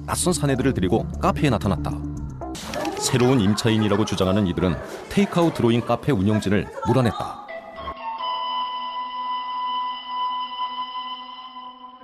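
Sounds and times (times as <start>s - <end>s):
held chord background music: 0.0s - 5.9s.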